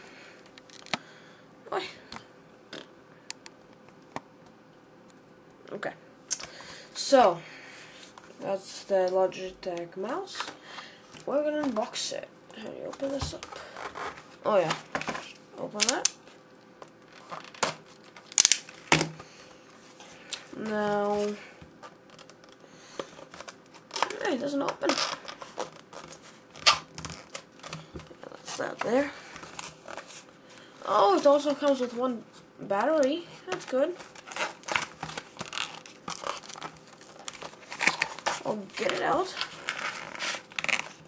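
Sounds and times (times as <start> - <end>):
packaging crackling and clicking: 0.4 - 1.0, 12.9 - 16.2, 16.8 - 19.0, 21.8 - 28.2, 32.9 - 41.0.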